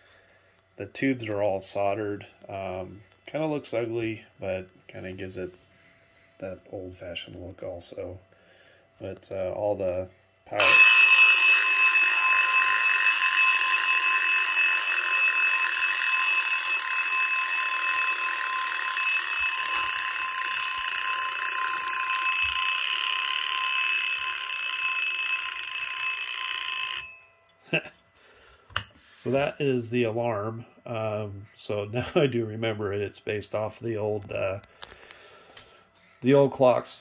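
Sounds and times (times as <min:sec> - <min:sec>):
electronic alarm clock ringing: 0:10.5 - 0:27.8.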